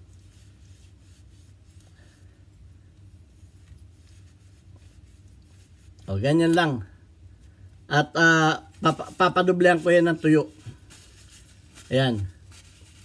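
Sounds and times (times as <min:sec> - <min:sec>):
tissue rubbing on metal: 0:00.0 - 0:06.4, 0:08.1 - 0:13.0
low steady hum: 0:00.0 - 0:13.0.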